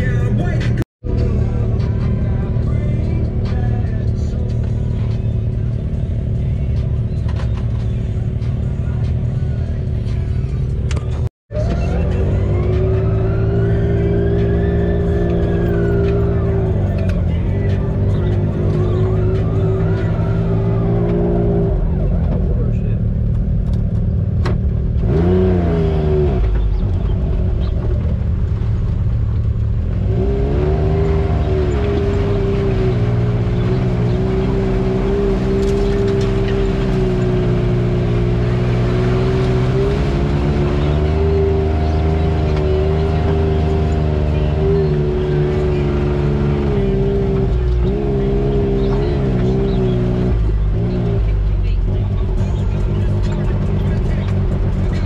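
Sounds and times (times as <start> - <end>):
utility vehicle engine revving: 0.0 - 55.0.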